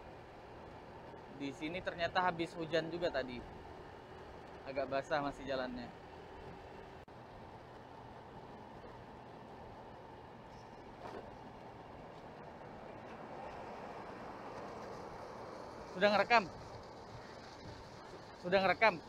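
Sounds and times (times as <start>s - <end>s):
scooter engine hum: 0.0s - 19.0s
tyre noise on wet road: 10.9s - 18.5s
wind noise: 14.7s - 18.4s.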